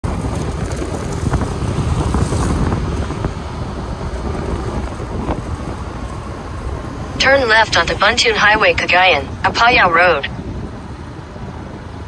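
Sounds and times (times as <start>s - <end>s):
wind buffeting microphone: 0.0s - 7.2s, 10.2s - 12.0s
scooter engine and road noise: 0.0s - 12.0s.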